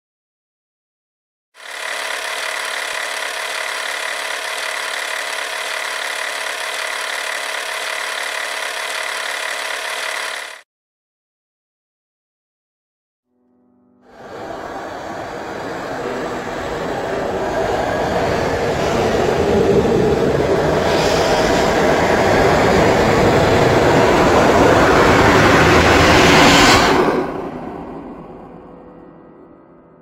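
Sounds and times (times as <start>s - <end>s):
loud dense rushing noise: 14.1s - 28.0s.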